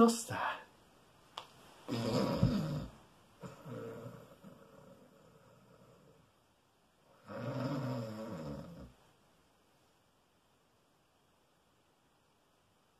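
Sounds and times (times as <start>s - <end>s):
man snoring: 1.9s - 6.2s, 7.2s - 8.9s.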